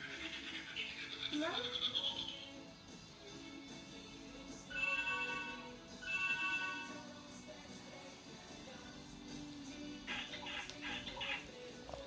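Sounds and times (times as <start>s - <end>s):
faint background music: 0.0s - 12.0s
electronic ringing chime: 4.7s - 7.0s.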